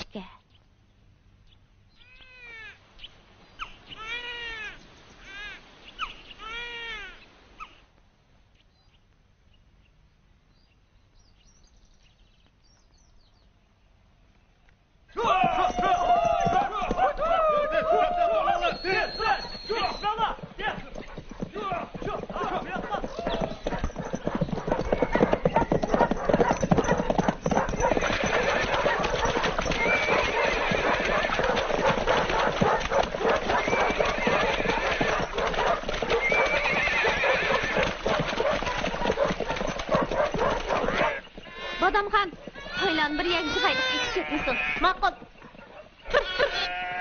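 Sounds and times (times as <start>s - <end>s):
horse neighing: 15.2s - 45.2s, 46.1s - 47.0s
horses' hooves clattering: 15.2s - 46.7s.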